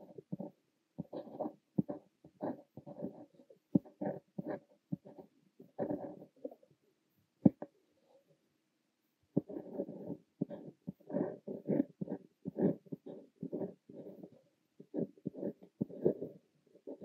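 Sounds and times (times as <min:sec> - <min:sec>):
fountain pen scratching on paper: 0:00.0 - 0:06.6, 0:09.4 - 0:17.0.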